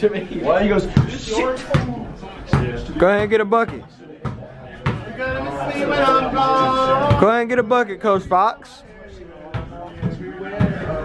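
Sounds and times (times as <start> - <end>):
indistinct talk: 0.0 - 11.0.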